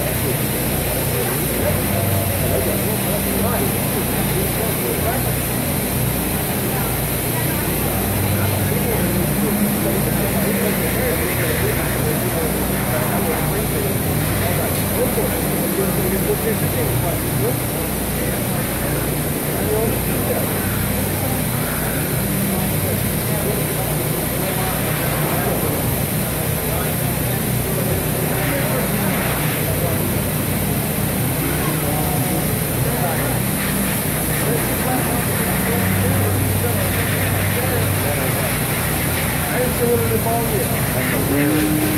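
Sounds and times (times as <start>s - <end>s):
indistinct voices talking: 0.0s - 41.9s
steady low hum: 0.0s - 41.9s.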